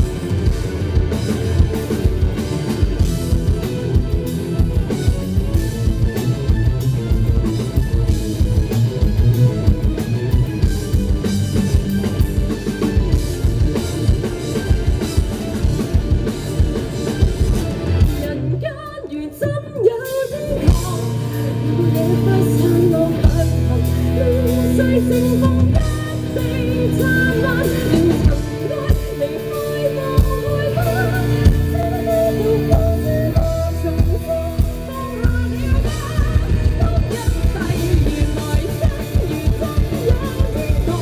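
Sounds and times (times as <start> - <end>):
live rock band: 0.0 - 41.0
woman singing: 18.2 - 41.0.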